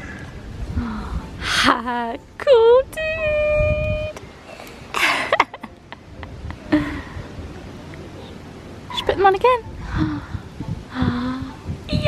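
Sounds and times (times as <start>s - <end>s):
wind buffeting microphone: 0.0s - 4.3s, 6.1s - 7.8s, 8.8s - 12.0s
faint outdoor hush: 0.0s - 12.0s
person laughing: 5.0s - 7.1s.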